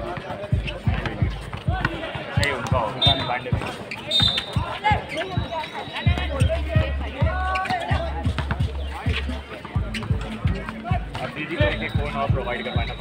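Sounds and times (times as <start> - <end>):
basketball bouncing on concrete: 0.0 - 12.5
players calling out: 0.0 - 13.0.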